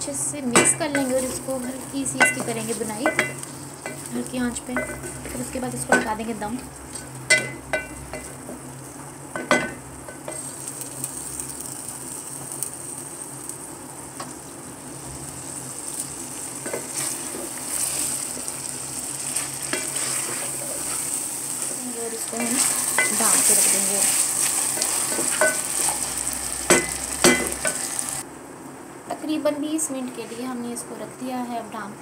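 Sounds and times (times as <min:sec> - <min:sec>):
food sizzling in hot oil: 0:00.0 - 0:28.2.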